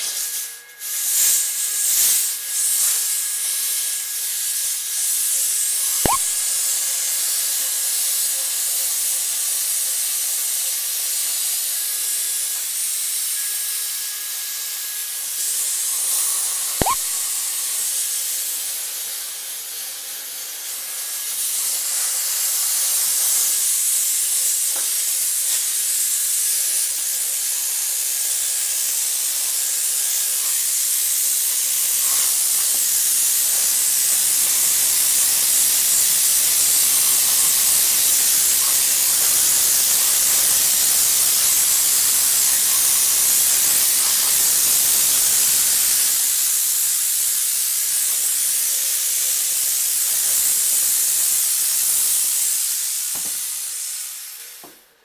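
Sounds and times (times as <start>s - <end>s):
steam hissing from steamer: 0.0s - 55.0s
short sharp sounds: 6.1s - 6.4s, 16.8s - 17.4s.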